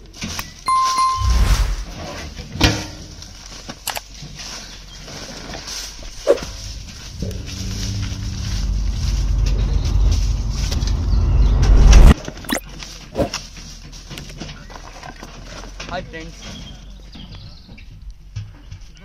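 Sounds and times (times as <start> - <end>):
low rumbling drone: 6.0 - 12.2.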